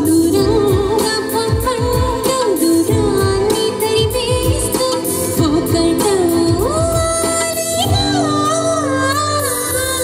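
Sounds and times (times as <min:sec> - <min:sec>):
backing track with drum beat: 0:00.0 - 0:10.0
woman singing into microphone: 0:00.0 - 0:10.0.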